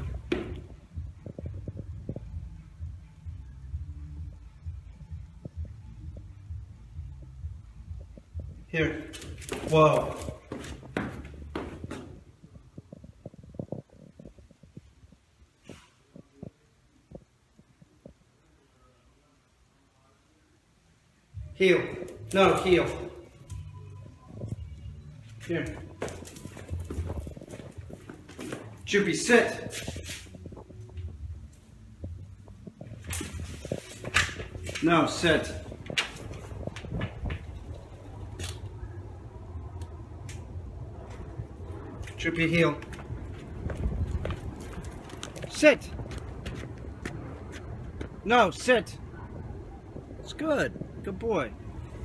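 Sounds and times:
shuffling footsteps on tile: 0:08.5 - 0:16.5, 0:24.3 - 0:38.8, 0:41.0 - 0:48.2
low steady hum: 0:16.3 - 0:52.0.

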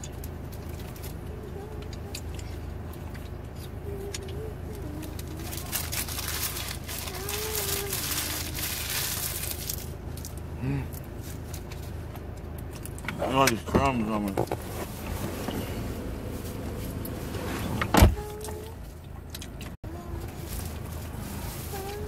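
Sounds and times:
low car interior hum: 0:00.0 - 0:22.0
muffled humming with full mouth: 0:00.0 - 0:22.0
paper wrapper crinkling: 0:04.9 - 0:10.3.

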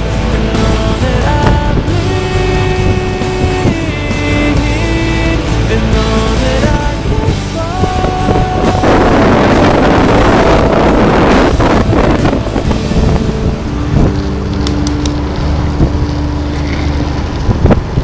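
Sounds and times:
music: 0:00.0 - 0:18.0
steady mechanical drone: 0:00.0 - 0:18.0
wind rushing over microphone: 0:00.0 - 0:18.0.

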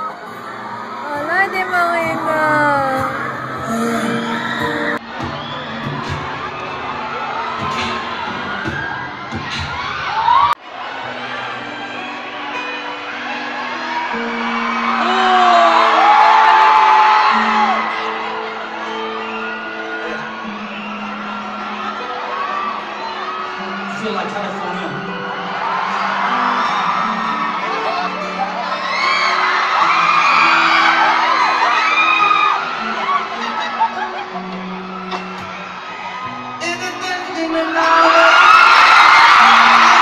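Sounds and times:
crowd screaming and cheering: 0:00.0 - 0:40.0.

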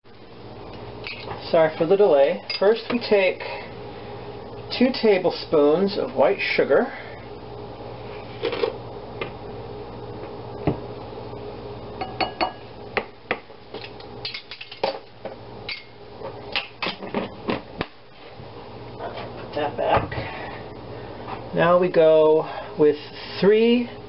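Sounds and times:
spoon tapping glass bowl: 0:12.0 - 0:12.6.

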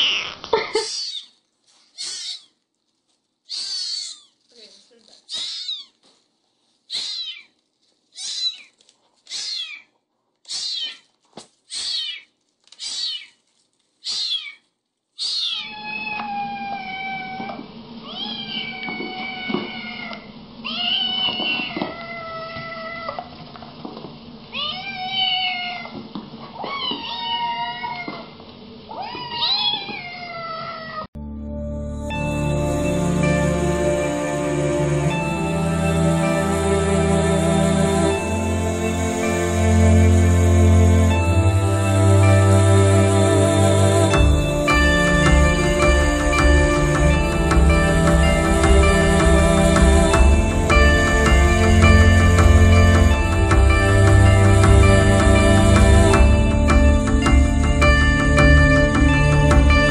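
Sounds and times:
kittens meowing together: 0:02.0 - 0:02.4
kitten meowing: 0:02.0 - 0:02.5, 0:03.5 - 0:04.2, 0:05.3 - 0:05.9, 0:06.9 - 0:07.5, 0:08.2 - 0:08.7, 0:09.3 - 0:09.8, 0:10.5 - 0:11.0, 0:11.8 - 0:12.2, 0:12.8 - 0:13.3, 0:14.0 - 0:14.6, 0:15.2 - 0:23.2, 0:24.5 - 0:25.9, 0:26.6 - 0:28.2, 0:28.9 - 0:31.1
steady low hum: 0:31.2 - 0:59.9.

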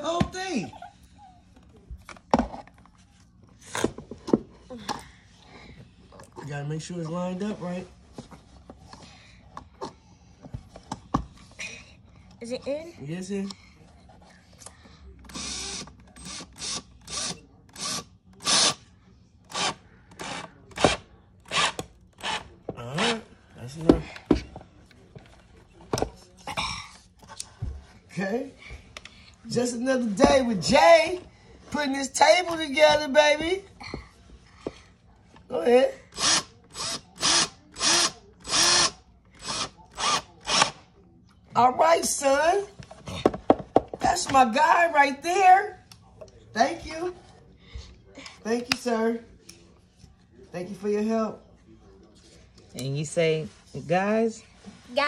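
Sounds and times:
power drill bursts: 0:15.3 - 0:18.8, 0:36.2 - 0:40.8.

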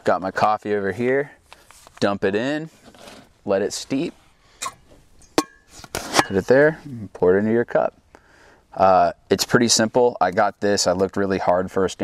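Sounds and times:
metal pot clinking: 0:04.6 - 0:06.5.

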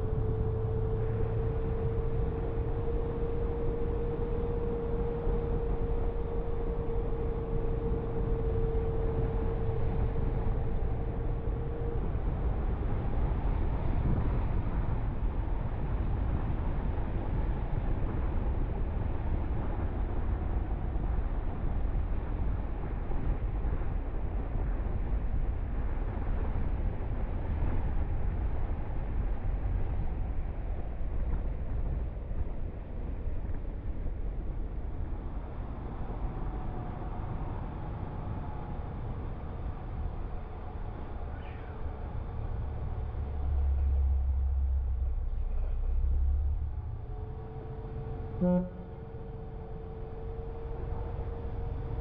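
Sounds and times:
low road rumble: 0:00.0 - 0:52.0
wind buffeting microphone: 0:00.0 - 0:52.0.

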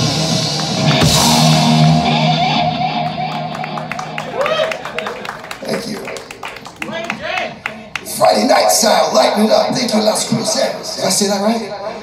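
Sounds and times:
electric guitar ringing out: 0:00.0 - 0:04.8.

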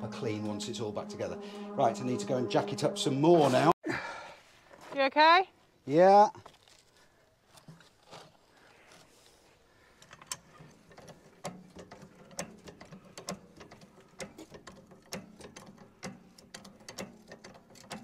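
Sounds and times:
hydraulic jack pumping clicks: 0:10.0 - 0:18.0.

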